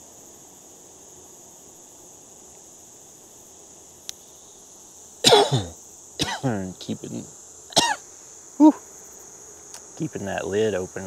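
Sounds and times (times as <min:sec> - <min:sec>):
crickets chirping: 0:00.0 - 0:11.0
person coughing: 0:05.2 - 0:06.6, 0:07.8 - 0:08.0.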